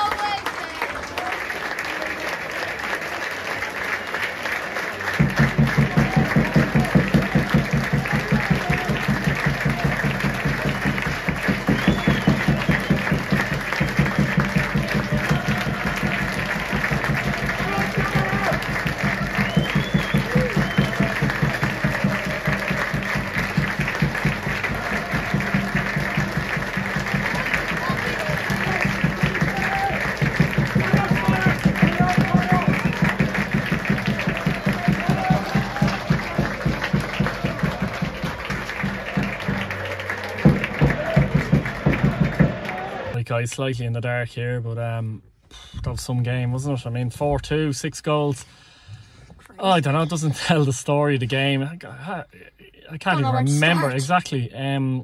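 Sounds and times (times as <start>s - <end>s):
crowd applauding and talking: 0.0s - 43.4s, 49.6s - 52.2s, 52.9s - 54.8s
music playing: 5.4s - 43.1s.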